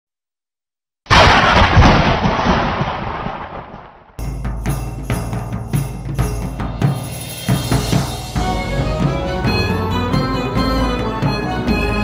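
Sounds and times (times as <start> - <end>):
boom impact with rumble: 1.1 - 4.2.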